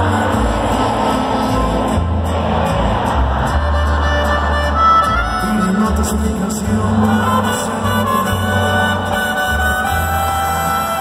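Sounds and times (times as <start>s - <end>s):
crowd cheering: 0.0s - 6.0s
live band music over sound system: 0.0s - 11.0s.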